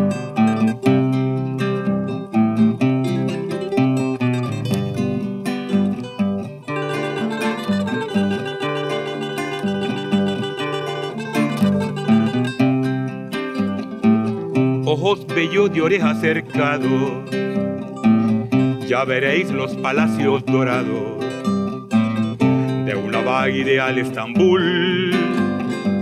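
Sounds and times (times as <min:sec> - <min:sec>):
acoustic guitars playing: 0:00.0 - 0:26.0.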